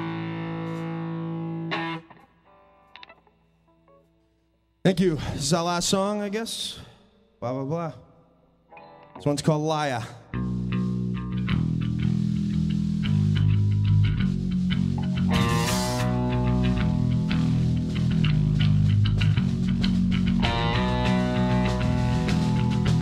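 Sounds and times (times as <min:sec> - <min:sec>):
rock band playing: 0:00.0 - 0:02.2, 0:10.4 - 0:23.0
bass guitar: 0:00.0 - 0:02.3, 0:10.3 - 0:23.0
distorted electric guitar: 0:00.0 - 0:04.0, 0:10.4 - 0:23.0
drum kit: 0:11.4 - 0:23.0
loud cymbal crash: 0:15.4 - 0:16.2.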